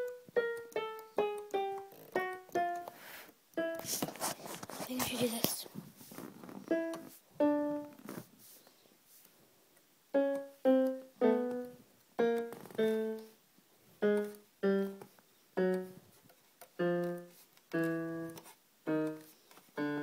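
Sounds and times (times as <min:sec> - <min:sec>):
electric piano single notes: 0:00.0 - 0:04.0, 0:06.6 - 0:07.9, 0:10.1 - 0:13.4, 0:14.0 - 0:16.0, 0:16.8 - 0:20.0.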